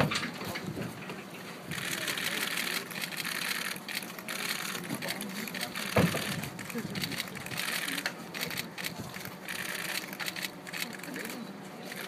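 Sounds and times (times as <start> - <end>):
camera shutters clicking rapidly: 1.7 - 12.0.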